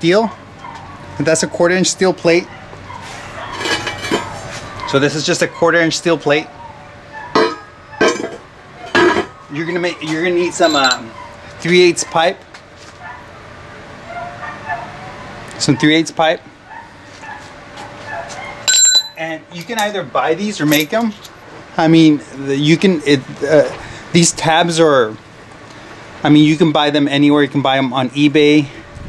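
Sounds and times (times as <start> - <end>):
steel plate scraping on concrete: 3.5 - 4.4
metal pipe clinking on concrete: 3.6 - 4.3, 10.6 - 11.1, 18.7 - 20.0, 20.7 - 21.3.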